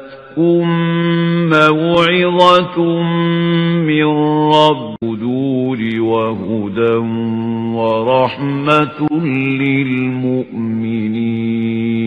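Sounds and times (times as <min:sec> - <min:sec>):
single voice chanting melodically: 0:00.0 - 0:12.0.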